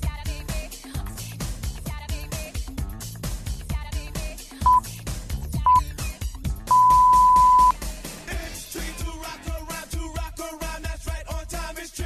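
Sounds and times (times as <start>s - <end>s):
background music: 0.0s - 12.0s
timer beeps: 6.7s - 7.7s.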